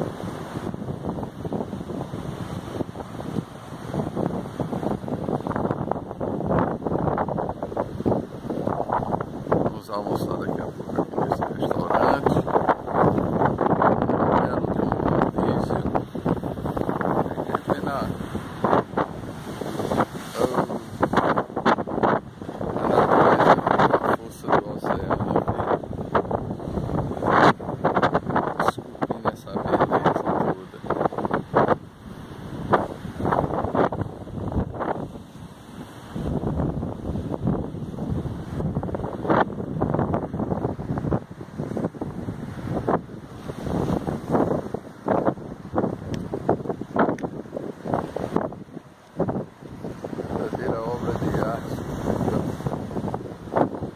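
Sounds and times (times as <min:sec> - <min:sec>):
sea waves breaking on rocks: 0:00.0 - 0:09.7, 0:10.5 - 0:24.6, 0:25.4 - 0:53.9
wind buffeting microphone: 0:00.0 - 0:53.9.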